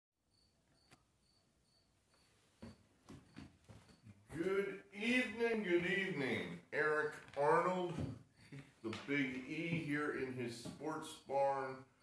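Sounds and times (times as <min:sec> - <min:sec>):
faint cricket chirping: 0:00.2 - 0:12.0.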